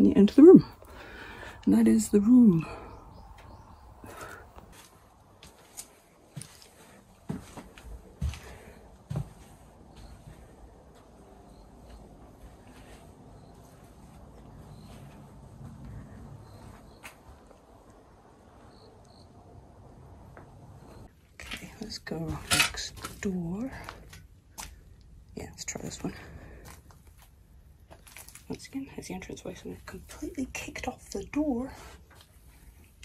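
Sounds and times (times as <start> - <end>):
footsteps crunching over rubble: 3.3 - 17.5, 21.0 - 24.9, 26.2 - 28.7.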